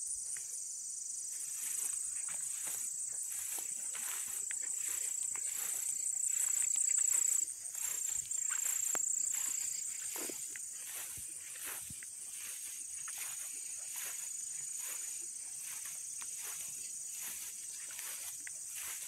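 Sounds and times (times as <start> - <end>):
insects trilling: 0.0 - 19.0.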